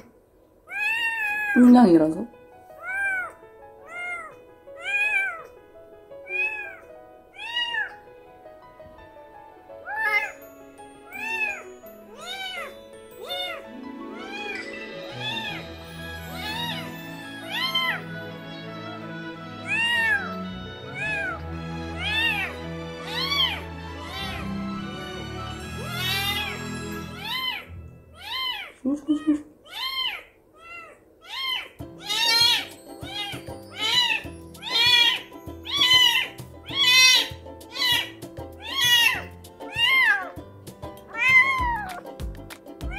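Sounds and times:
newborn kitten meowing: 0:00.7 - 0:01.6, 0:02.8 - 0:05.5, 0:06.2 - 0:08.0, 0:09.8 - 0:10.3, 0:11.1 - 0:14.6, 0:16.4 - 0:18.0, 0:19.7 - 0:20.4, 0:21.0 - 0:21.4, 0:22.0 - 0:24.4, 0:25.8 - 0:26.6, 0:27.2 - 0:40.4, 0:41.1 - 0:42.0.

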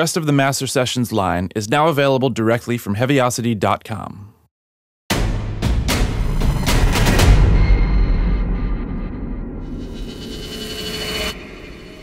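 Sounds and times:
cinematic logo hissing swell: 0:09.6 - 0:12.0.

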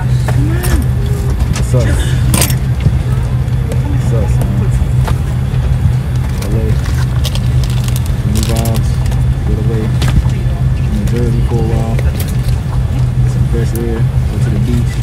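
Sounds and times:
airliner cabin drone: 0:00.0 - 0:15.0
faint passenger voices: 0:00.0 - 0:15.0.

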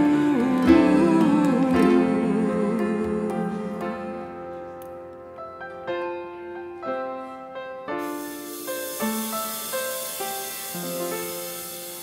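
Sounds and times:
piano playing slow notes: 0:00.0 - 0:12.0.

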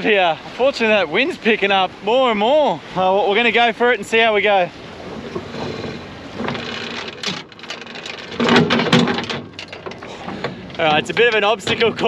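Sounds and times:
wind buffeting microphone: 0:03.7 - 0:12.0
knocks and clatters: 0:05.3 - 0:12.0.

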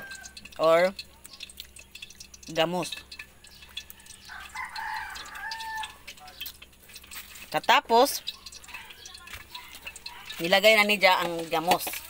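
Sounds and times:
rooster crowing: 0:00.0 - 0:00.4, 0:03.3 - 0:06.1.

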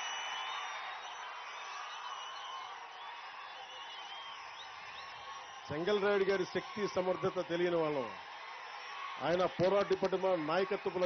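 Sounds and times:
whistles: 0:00.0 - 0:05.9
crowd cheering: 0:00.0 - 0:11.0.

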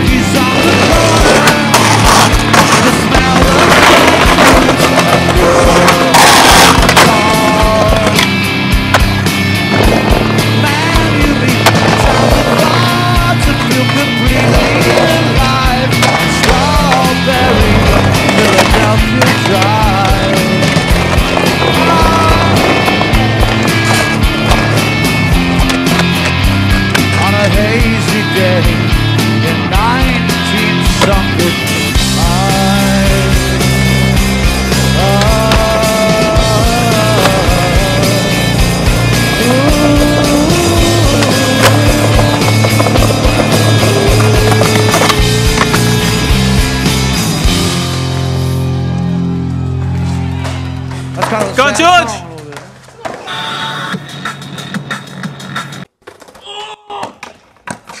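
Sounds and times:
skateboards popping and landing: 0:00.0 - 0:48.3, 0:49.9 - 0:58.0
loud music: 0:00.0 - 0:52.2
skateboards rolling on concrete: 0:00.0 - 0:58.0.

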